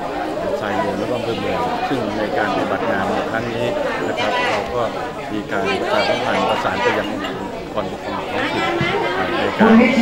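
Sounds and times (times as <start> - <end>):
people chattering: 0.0 - 10.0
man speaking: 0.5 - 10.0.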